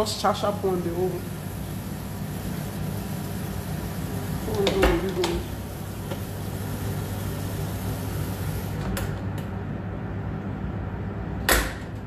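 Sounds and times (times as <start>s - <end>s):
extractor fan humming: 0.0s - 12.0s.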